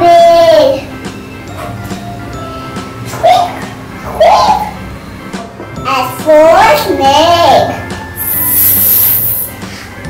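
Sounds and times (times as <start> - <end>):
soft background music: 0.0 - 10.0
child hissing like a snake: 8.2 - 10.0.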